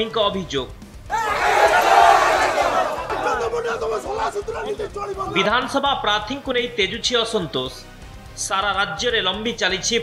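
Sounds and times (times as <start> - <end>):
crowd shouting together: 1.1 - 5.5.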